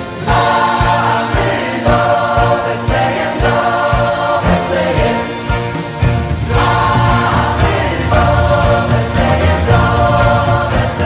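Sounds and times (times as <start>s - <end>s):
choir singing a carol: 0.0s - 11.0s.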